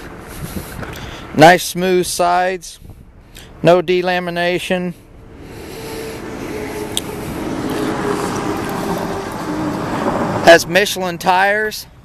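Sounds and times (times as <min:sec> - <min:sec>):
vehicle engine and tyres: 0:00.0 - 0:12.0.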